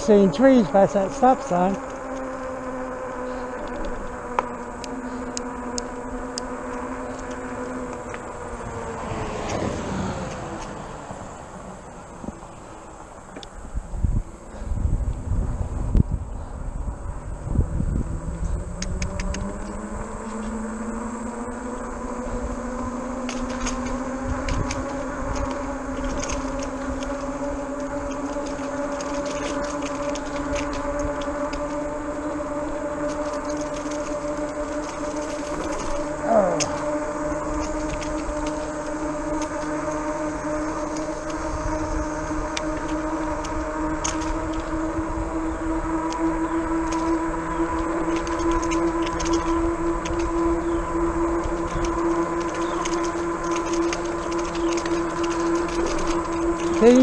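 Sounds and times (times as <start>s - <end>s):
electric bike whine: 0.0s - 57.0s.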